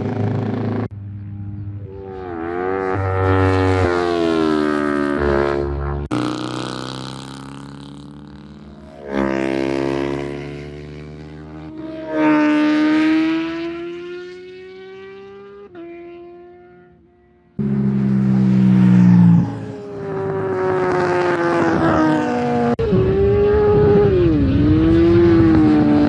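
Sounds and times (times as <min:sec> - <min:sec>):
racing motorcycles passing: 0:00.0 - 0:26.0.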